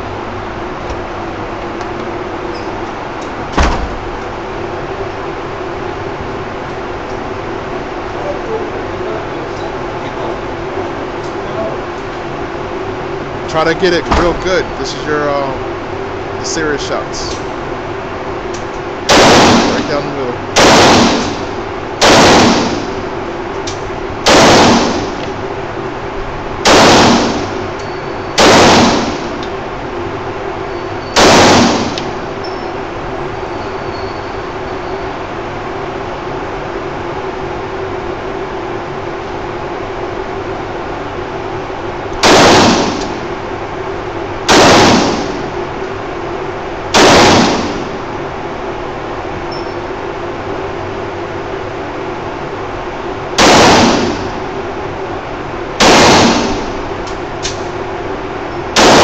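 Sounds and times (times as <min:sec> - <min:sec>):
steady low hum: 0:00.0 - 0:59.0
pistol shots indoors: 0:18.5 - 0:25.4, 0:26.6 - 0:29.6, 0:30.7 - 0:32.6, 0:42.2 - 0:43.4, 0:44.4 - 0:45.6, 0:46.9 - 0:48.1, 0:53.3 - 0:54.5, 0:55.8 - 0:57.8, 0:58.7 - 0:59.0.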